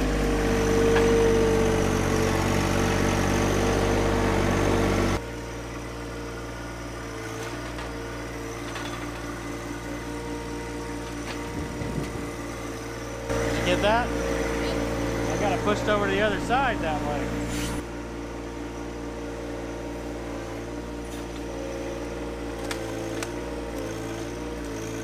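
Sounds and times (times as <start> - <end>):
high engine whine: 0.0 - 25.0
tractor diesel engine running: 0.0 - 25.0.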